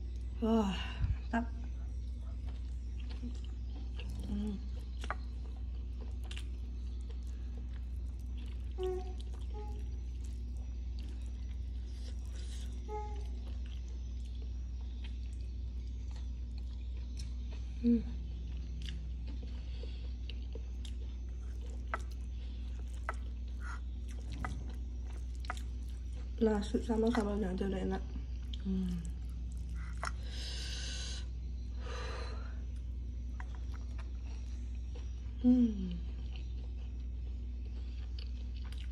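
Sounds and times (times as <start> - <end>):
steady low hum: 0.0 - 38.9
chewing and mouth clicks: 1.6 - 30.6, 32.7 - 38.9
person humming: 35.4 - 36.0.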